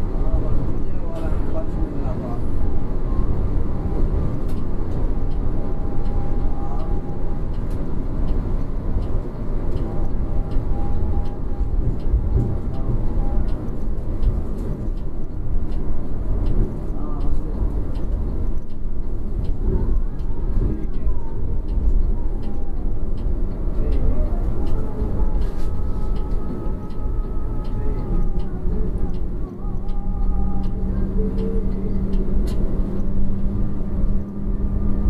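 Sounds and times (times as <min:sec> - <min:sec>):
bus engine and road rumble: 0:00.0 - 0:35.0
light ticking: 0:03.8 - 0:35.0.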